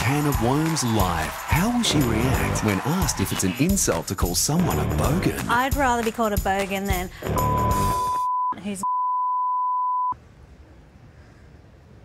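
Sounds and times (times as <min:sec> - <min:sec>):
high censor bleep: 0:07.4 - 0:10.2.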